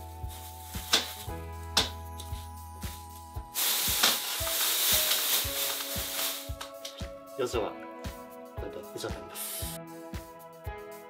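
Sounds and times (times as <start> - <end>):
plastic sheet rustling and crinkling: 2.3 - 7.0.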